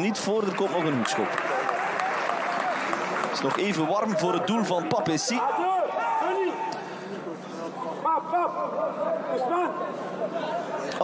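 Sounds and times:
football ground background noise: 0.0 - 11.0.

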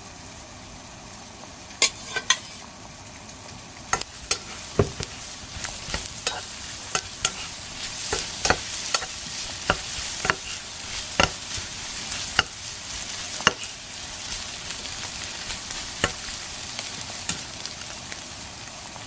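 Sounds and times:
food sizzling in a pan: 0.0 - 19.0
utensil scraping a pan: 1.8 - 2.7, 3.9 - 17.6.

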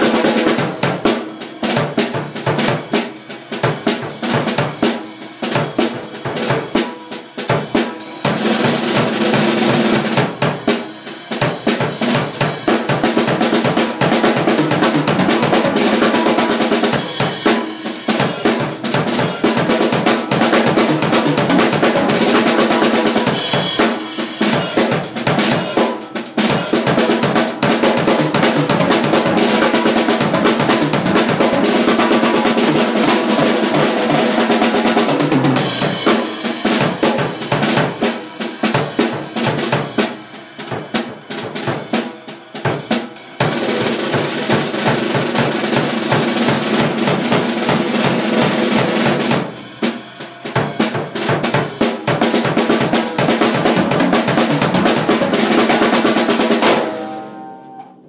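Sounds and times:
drum kit rolls and fills: 0.0 - 58.0.

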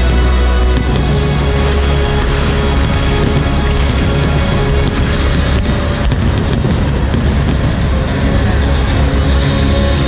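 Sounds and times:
loud music: 0.0 - 10.0
fireworks bangs: 0.6 - 9.9.

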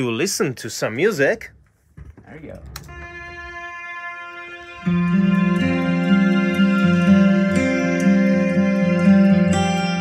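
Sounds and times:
recorded music over studio monitors: 0.0 - 10.0.

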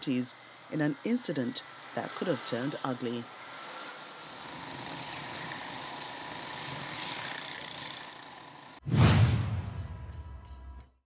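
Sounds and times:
motorcycles and vehicles on road: 0.0 - 8.8
music sting: 8.9 - 10.7.

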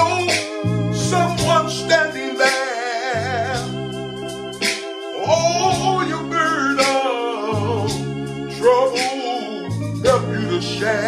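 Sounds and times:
man singing gospel: 0.0 - 4.0, 5.2 - 11.0
electronic keyboard chords: 0.0 - 11.0.

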